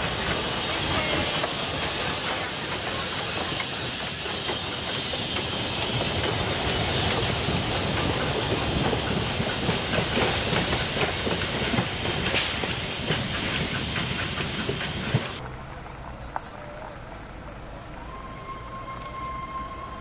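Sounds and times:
steam hissing: 0:00.0 - 0:15.4.

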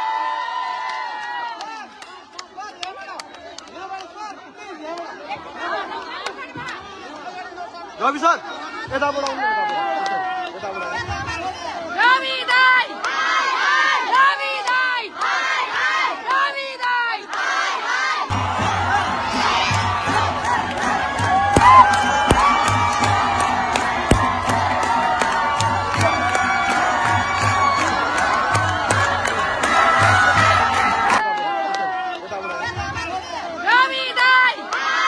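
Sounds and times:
crowd cheering and shouting: 0:00.0 - 0:02.6, 0:08.0 - 0:35.0
dance music beat: 0:18.4 - 0:26.5.

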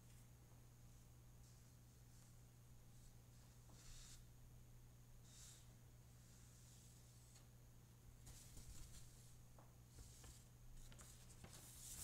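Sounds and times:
low steady hum: 0:00.0 - 0:12.0
paper sheets rustling: 0:08.2 - 0:12.0.

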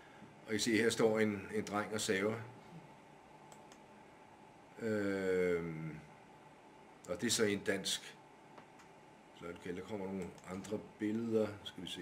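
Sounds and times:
faint clicks: 0:03.5 - 0:03.9, 0:08.5 - 0:11.2.

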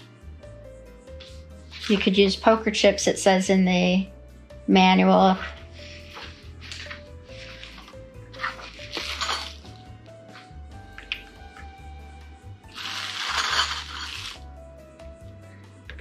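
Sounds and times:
background music: 0:00.0 - 0:16.0
metal game pieces clinking: 0:08.9 - 0:09.6, 0:12.8 - 0:14.4.

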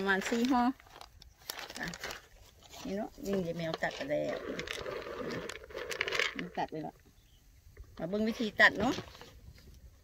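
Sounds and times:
foil packets crinkling: 0:00.0 - 0:06.5.

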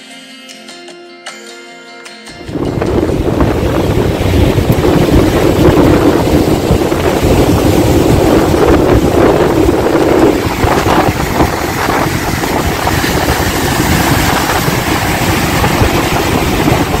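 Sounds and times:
rushing churning water: 0:02.5 - 0:17.0
wind buffeting microphone: 0:02.5 - 0:17.0.

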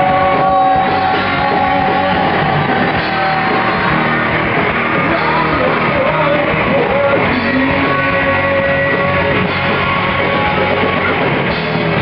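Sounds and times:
drums: 0:00.0 - 0:12.0
electric guitar: 0:00.0 - 0:12.0
live rock band playing: 0:00.0 - 0:12.0.

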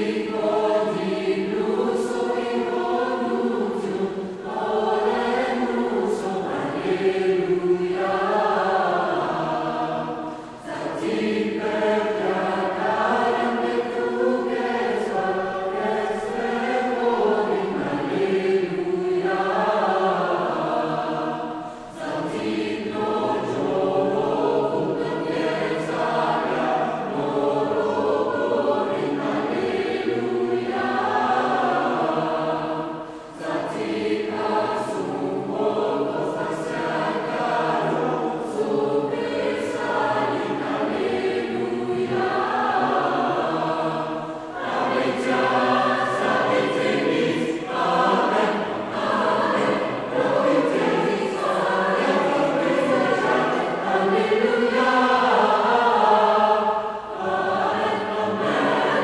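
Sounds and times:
mixed choir singing sacred music: 0:00.0 - 0:59.0.

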